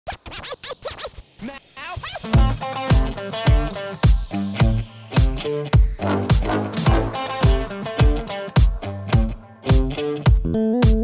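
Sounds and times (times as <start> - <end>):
turntable scratching: 0.1 - 8.8.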